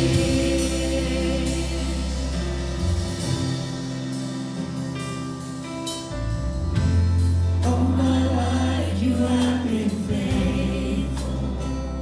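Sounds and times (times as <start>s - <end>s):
congregation singing: 0.0s - 4.0s, 7.6s - 12.0s
band playing worship music: 0.0s - 12.0s.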